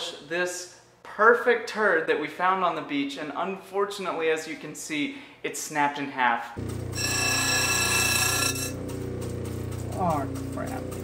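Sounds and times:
stone grinding with high whine: 0:06.6 - 0:08.9
motor humming: 0:06.6 - 0:11.0.

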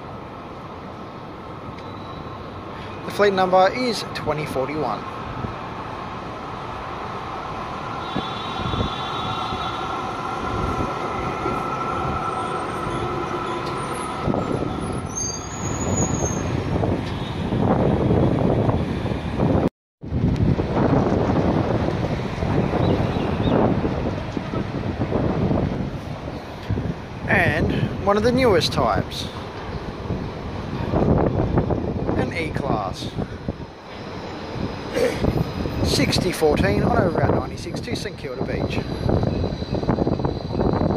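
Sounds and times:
tram rolling over rails: 0:00.0 - 0:40.9
tram whine: 0:00.0 - 0:40.9.

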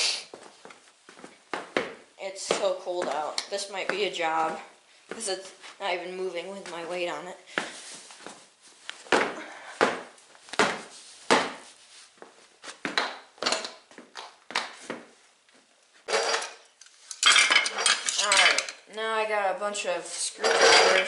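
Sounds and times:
screwdrivers clattering on wheel rim: 0:16.1 - 0:18.8.

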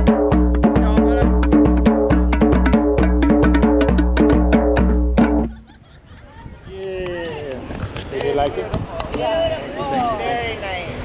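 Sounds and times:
bongo drums: 0:00.0 - 0:05.7.

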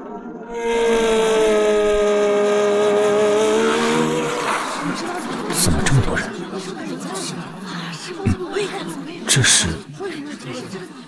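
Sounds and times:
car engine noise: 0:00.6 - 0:06.7.

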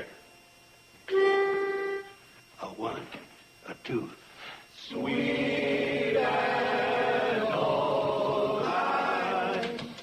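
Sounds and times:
pitch pipe note: 0:01.1 - 0:02.2.

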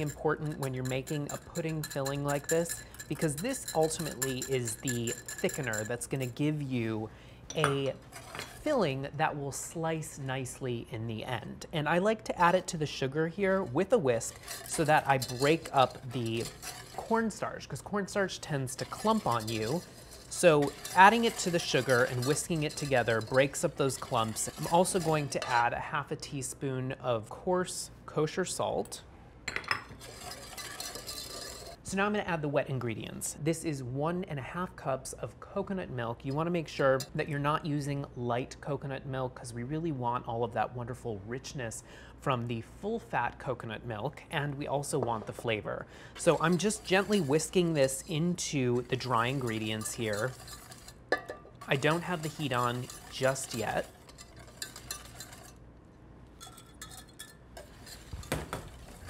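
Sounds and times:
whisk scratching in steel pan: 0:00.0 - 0:06.4, 0:08.1 - 0:08.9, 0:13.4 - 0:25.8, 0:30.0 - 0:31.8, 0:46.2 - 0:55.6, 0:56.4 - 0:59.0.

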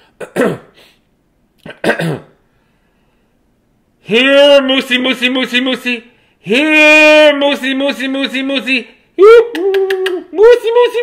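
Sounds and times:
man clearing his throat: 0:00.0 - 0:00.8, 0:01.6 - 0:02.4.

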